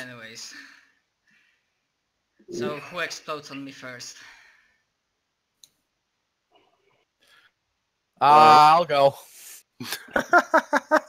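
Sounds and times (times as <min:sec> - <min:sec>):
person speaking: 0:02.5 - 0:04.2.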